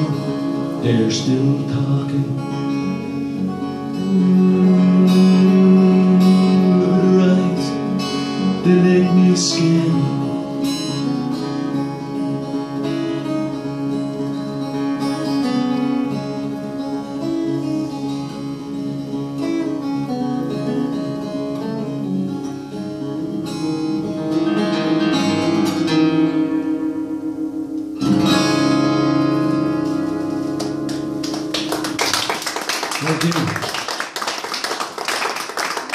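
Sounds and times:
strummed guitar chord ringing: 0.0s - 31.4s
fingerpicked acoustic guitar: 0.0s - 33.2s.

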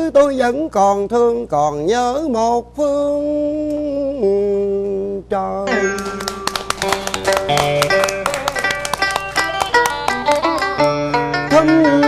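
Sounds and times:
plucked string instrumental: 5.7s - 12.0s.

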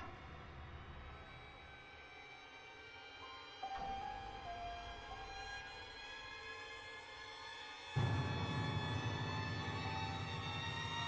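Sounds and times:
horror film score drone: 8.0s - 11.0s.

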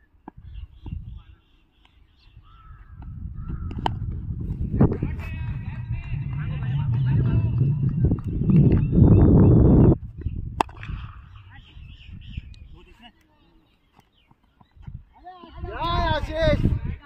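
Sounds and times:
wind rumble on microphone: 0.4s - 1.4s, 2.3s - 12.9s, 14.8s - 17.0s
faint distant calls: 0.6s - 4.6s.

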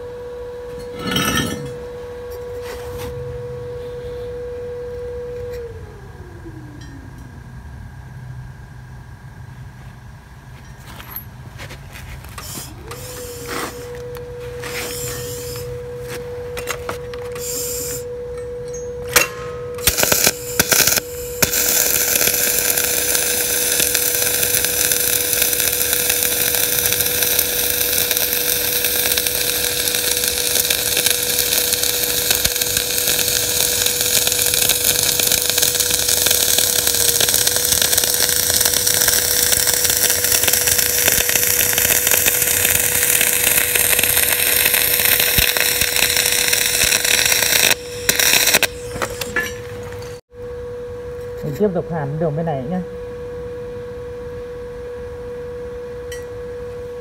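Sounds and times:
welding arc crackling: 1.0s - 1.7s, 19.8s - 49.9s.

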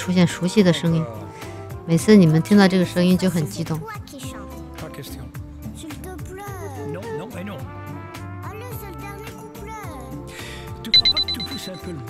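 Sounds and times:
background music: 0.0s - 12.0s
rapid high electronic beeps: 11.0s - 11.9s.

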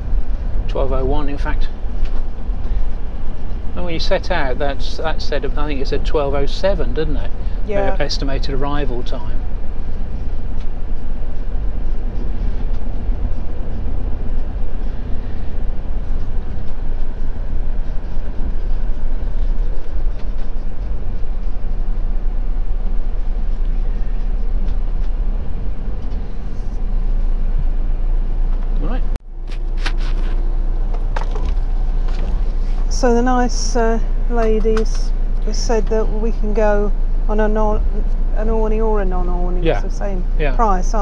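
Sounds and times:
engine and road rumble: 0.0s - 41.0s.

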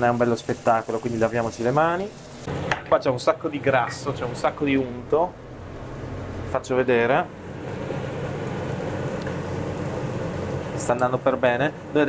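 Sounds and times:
meat sizzling in a frying pan: 0.0s - 2.8s
range hood fan hum: 0.0s - 12.0s.

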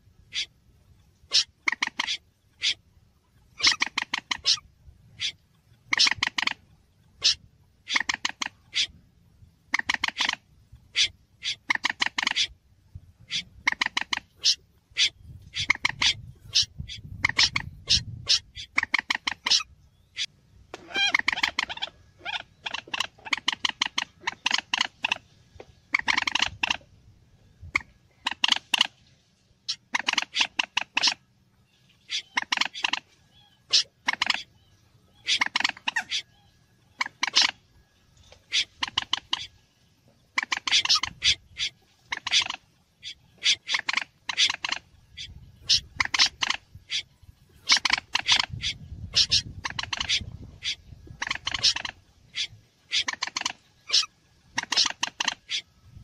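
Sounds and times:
moorhen calls: 0.1s - 26.9s, 27.6s - 29.0s, 29.6s - 56.0s
snipe calls: 0.2s - 0.6s, 1.3s - 9.0s, 9.6s - 12.6s, 13.2s - 25.3s, 25.9s - 26.9s, 27.6s - 29.0s, 29.6s - 39.6s, 40.2s - 56.0s.

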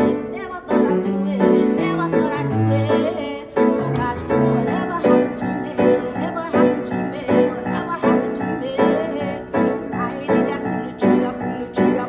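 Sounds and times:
grand piano playing chords: 0.0s - 12.0s.

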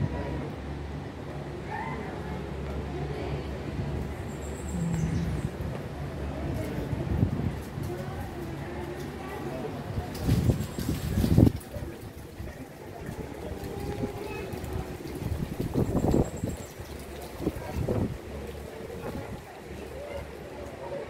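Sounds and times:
low steady murmur: 0.0s - 21.0s
people talking in background: 0.0s - 21.0s.

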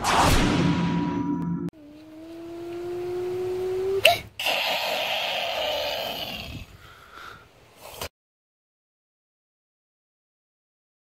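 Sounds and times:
child imitating car engine: 1.8s - 6.7s.

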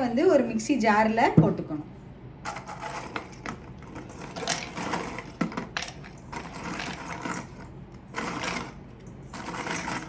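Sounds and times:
biscuits clattering in metal jar: 2.5s - 10.0s.

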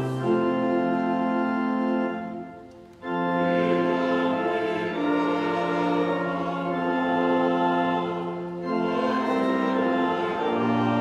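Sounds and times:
hymn with organ: 0.0s - 11.0s.

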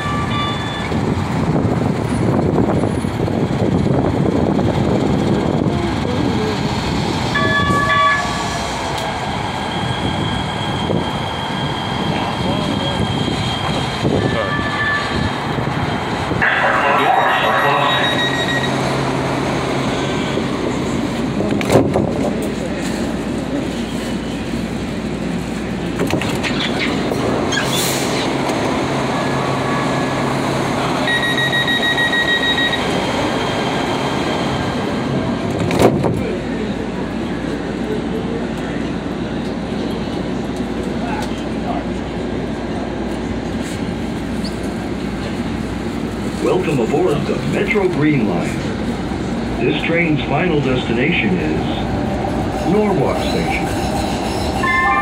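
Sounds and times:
light-rail train rumbling: 0.0s - 55.0s
train horn toots: 7.4s - 8.5s, 54.6s - 55.0s.

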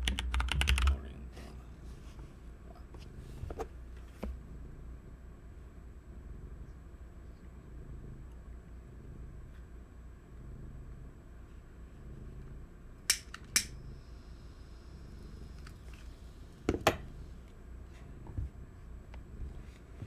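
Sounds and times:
low room hum: 0.0s - 20.0s
sharp clicks: 13.1s - 13.7s.

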